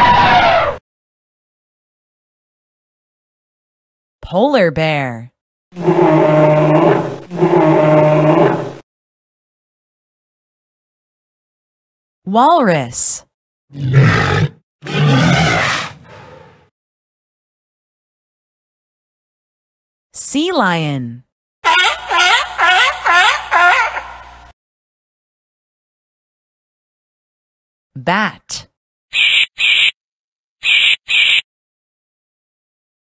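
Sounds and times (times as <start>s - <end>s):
walrus bellowing: 5.8s - 8.8s, 13.8s - 16.6s
bat screeches: 30.6s - 31.4s.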